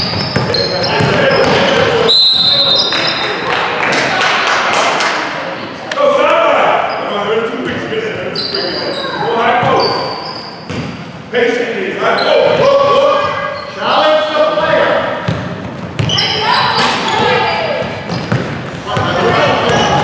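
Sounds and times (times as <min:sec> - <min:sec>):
sneakers squeaking: 0:00.0 - 0:03.5, 0:06.8 - 0:11.2, 0:12.1 - 0:14.3, 0:15.2 - 0:20.0
basketball bouncing on hardwood: 0:17.2 - 0:20.0.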